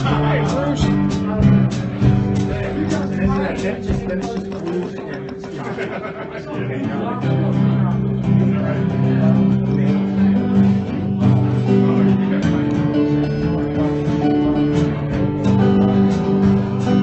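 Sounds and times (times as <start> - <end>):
acoustic guitar strummed: 0.0 - 17.0.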